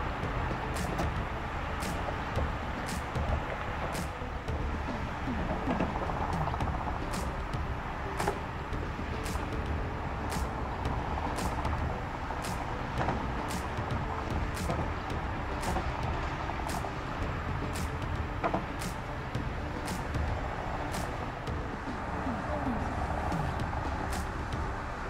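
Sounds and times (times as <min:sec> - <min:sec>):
distant traffic rumble: 0:00.0 - 0:25.0.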